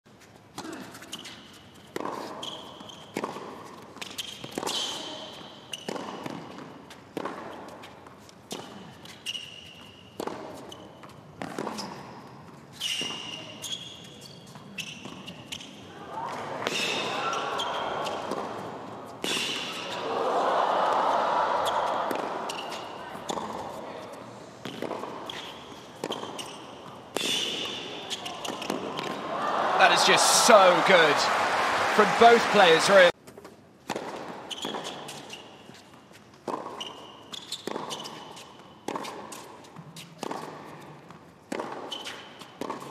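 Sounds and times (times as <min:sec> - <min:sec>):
crowd applauding: 0:29.2 - 0:33.1
crowd murmur: 0:29.2 - 0:33.1.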